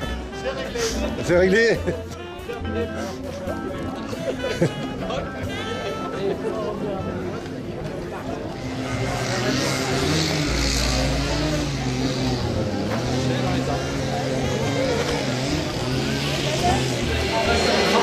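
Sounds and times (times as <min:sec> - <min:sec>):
people talking: 0:00.0 - 0:18.0
vehicle engine rumbling: 0:07.4 - 0:18.0.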